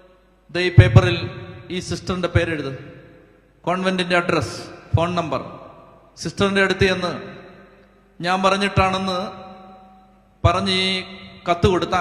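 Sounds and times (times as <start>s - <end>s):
man intoning through loudspeakers: 0.5s - 12.0s.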